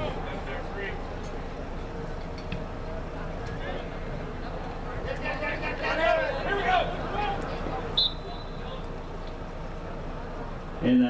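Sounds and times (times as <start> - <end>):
distant shouting voices: 0.0 - 10.8
open-air background hum: 0.0 - 11.0
referee's whistle blast: 7.9 - 8.8.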